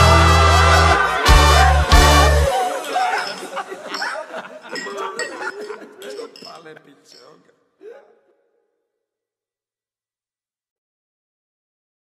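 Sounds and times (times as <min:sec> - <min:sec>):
voices chattering: 0:00.6 - 0:08.2
glasses clinking: 0:02.8 - 0:07.5.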